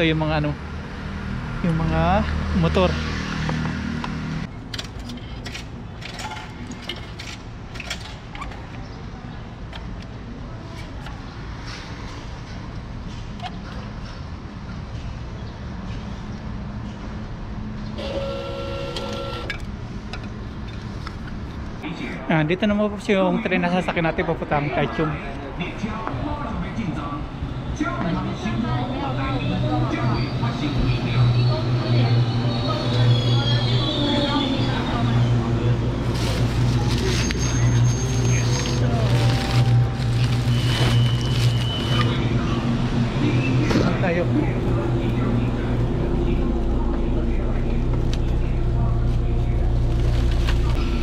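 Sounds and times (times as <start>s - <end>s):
ticket machine mechanical whirr: 18.0s - 19.5s
electric train humming: 18.0s - 19.7s, 29.0s - 43.6s
plastic bags rustling: 35.9s - 42.2s
thin high tones: 36.4s - 42.2s.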